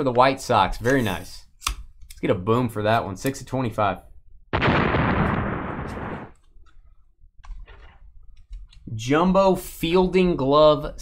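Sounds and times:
explosion boom: 0:04.5 - 0:06.4.

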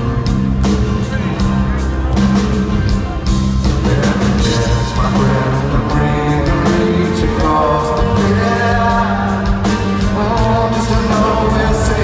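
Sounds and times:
live rock band: 0:00.0 - 0:12.0
man singing lead vocal: 0:03.6 - 0:12.0.

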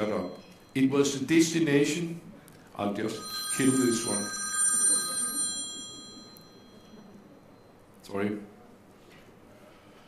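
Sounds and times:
mobile phone ringtone: 0:03.1 - 0:07.3.

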